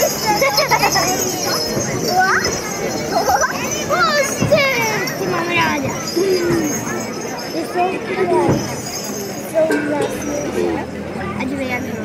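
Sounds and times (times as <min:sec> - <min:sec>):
children shouting: 0:00.0 - 0:11.7.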